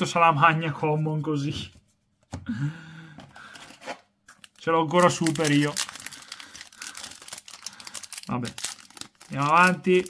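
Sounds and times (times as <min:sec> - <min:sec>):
foil wrapper crinkling: 0:04.4 - 0:10.0.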